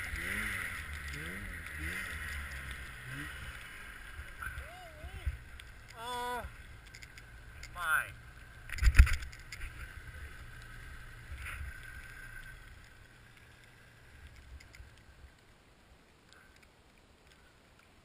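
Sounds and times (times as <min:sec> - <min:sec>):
snowmobile engine idling: 0:00.0 - 0:15.7.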